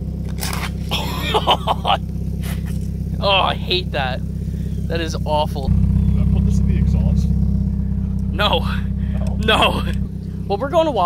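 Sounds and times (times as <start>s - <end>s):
low engine hum: 0.0s - 11.0s
people laughing: 0.9s - 2.8s, 9.2s - 10.0s.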